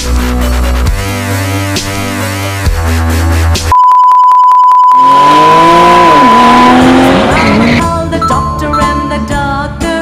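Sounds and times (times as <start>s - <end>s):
high-pitched beep: 3.7s - 9.0s
cartoon car sound falling pitch: 5.0s - 7.8s
electronic music: 5.0s - 7.8s.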